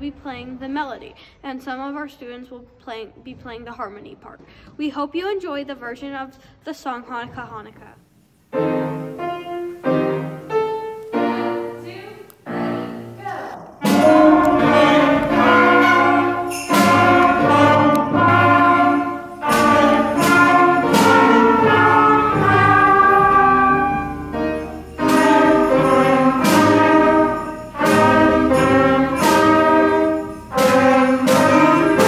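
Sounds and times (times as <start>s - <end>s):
school band playing a melody: 8.5s - 32.0s.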